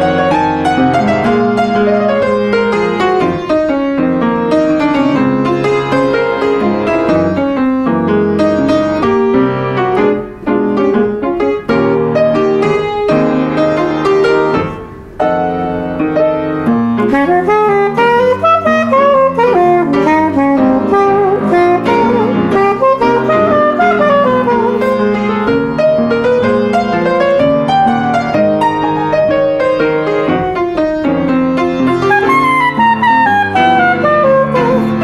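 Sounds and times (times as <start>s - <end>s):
jazz piano solo: 0.0s - 35.0s
saxophone: 17.0s - 27.7s, 31.6s - 35.0s.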